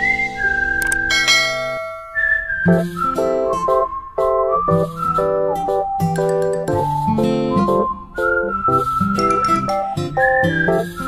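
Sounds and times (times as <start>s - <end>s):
whistled melody over chords: 0.0s - 11.0s.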